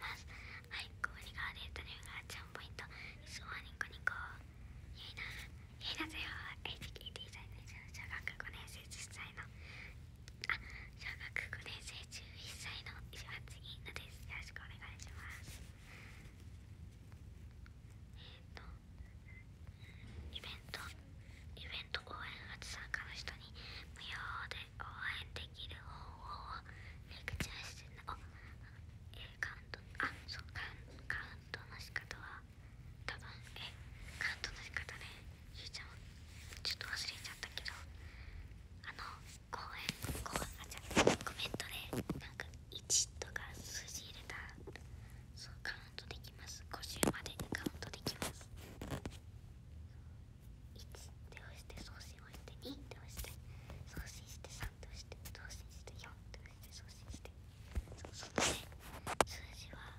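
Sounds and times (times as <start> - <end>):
woman whispering: 0.0 - 9.6, 10.3 - 15.8, 18.1 - 38.0, 38.8 - 49.0, 50.7 - 59.9
steady low hum: 0.0 - 59.9.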